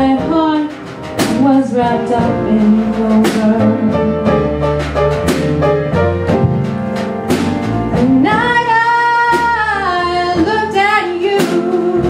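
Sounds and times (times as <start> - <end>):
woman singing: 0.0 - 4.5, 8.0 - 12.0
band playing slow ballad: 0.0 - 12.0.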